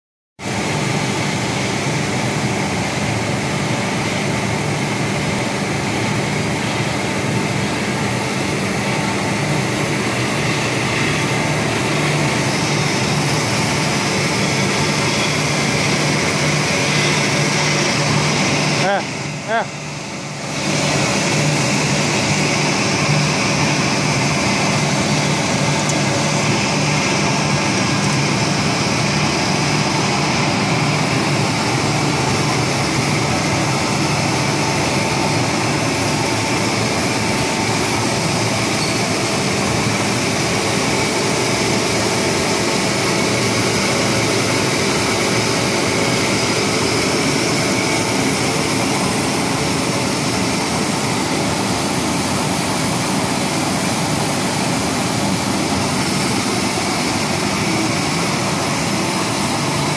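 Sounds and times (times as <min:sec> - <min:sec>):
machine drone and whir: 0:00.4 - 0:59.9.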